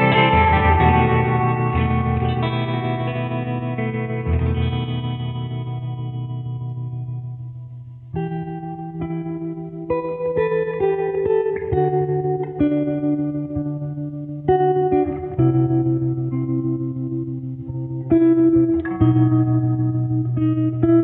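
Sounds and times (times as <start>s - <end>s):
guitar playing slow chords: 0.0s - 21.0s.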